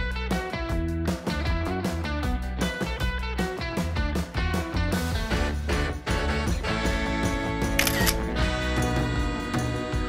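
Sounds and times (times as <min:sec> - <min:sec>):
guitar background music: 0:00.0 - 0:10.0
camera shutter click: 0:07.8 - 0:08.3.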